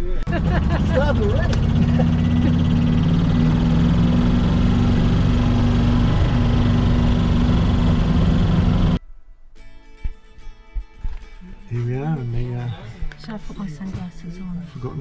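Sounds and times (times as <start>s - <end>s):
background music: 0.0s - 7.0s, 8.9s - 15.0s
cart motor droning: 0.3s - 9.0s.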